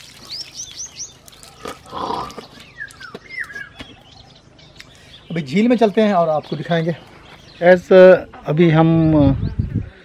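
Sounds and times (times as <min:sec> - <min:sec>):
water splashing: 0:00.0 - 0:03.0
birds chirping: 0:00.0 - 0:10.0.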